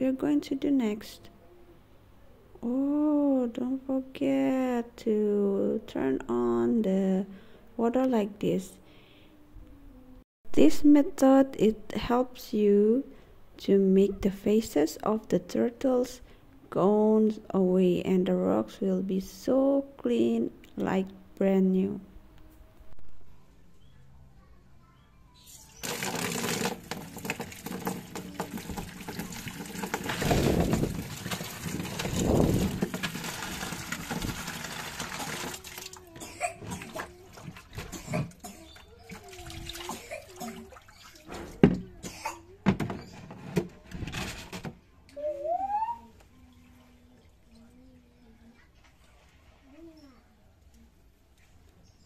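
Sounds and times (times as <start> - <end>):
water sloshing in tub: 25.8 - 41.6
water splashing into plastic tub: 25.8 - 41.7.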